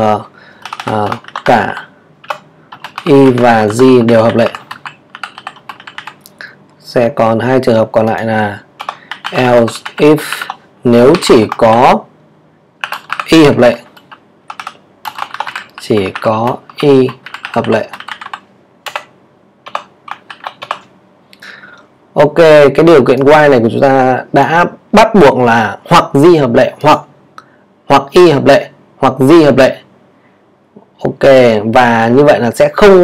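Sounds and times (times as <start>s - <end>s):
keyboard typing: 0.0s - 6.5s, 8.0s - 12.0s, 12.8s - 20.9s.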